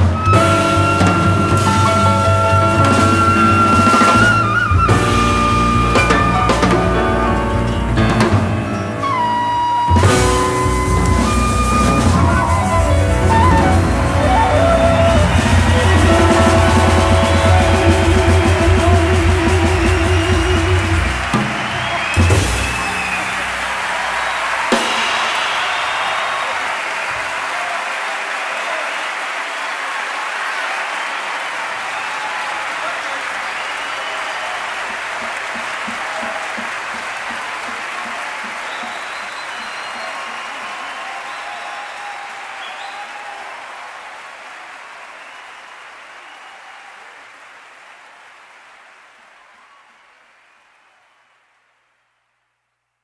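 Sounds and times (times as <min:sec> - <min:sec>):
audience applauding and cheering: 0:00.0 - 0:52.0
shouts and whistles: 0:09.0 - 0:18.0, 0:21.1 - 0:37.0, 0:37.6 - 0:47.4.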